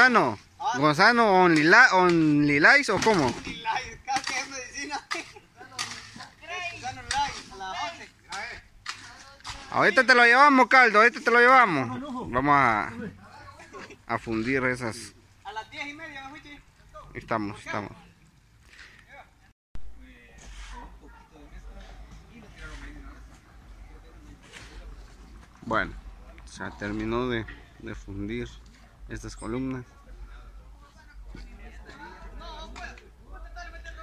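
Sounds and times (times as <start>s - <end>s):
outdoor background noise: 0.0s - 34.0s
voices talking: 0.0s - 34.0s
shovel scraping concrete mix: 4.2s - 6.4s, 20.4s - 20.9s.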